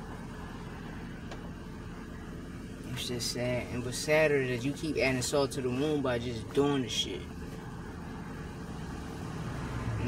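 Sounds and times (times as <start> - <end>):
car rumble inside cabin: 0.0 - 10.0.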